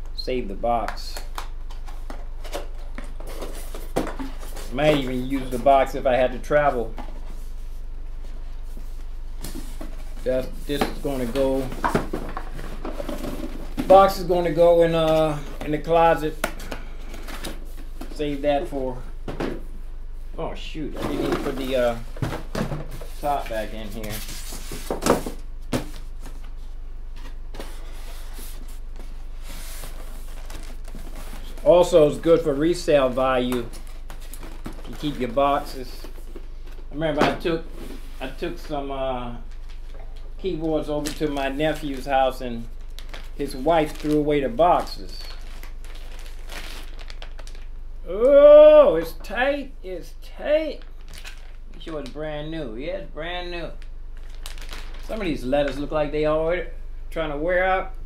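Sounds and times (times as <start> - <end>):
low electrical hum: 0.0 - 58.0
cardboard packaging clicks and rustles: 29.0 - 31.7, 33.5 - 36.9, 41.0 - 47.7, 50.7 - 52.2, 54.2 - 55.8.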